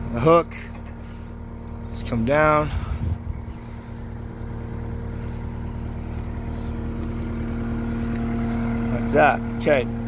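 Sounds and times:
diesel engine running: 0.0s - 10.0s.

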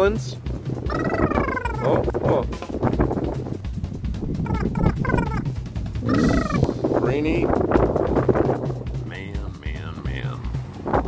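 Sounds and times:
low rumble: 0.4s - 11.0s
bird calls: 0.7s - 2.9s, 4.3s - 7.2s.

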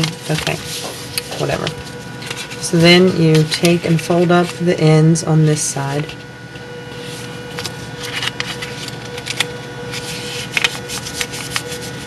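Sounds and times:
paper rustling and crackling: 0.0s - 4.6s, 7.0s - 12.0s
faint steady hum: 0.0s - 12.0s.

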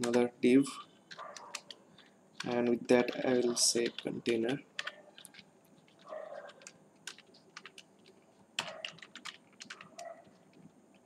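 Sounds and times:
typing on computer keyboard: 0.0s - 0.3s, 1.1s - 11.0s.

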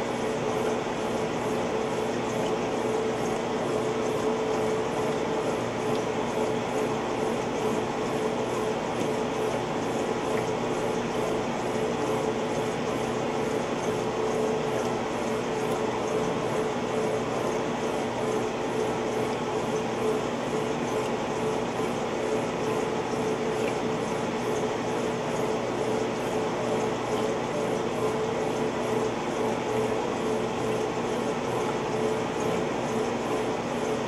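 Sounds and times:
washing machine motor hum: 0.0s - 34.0s.

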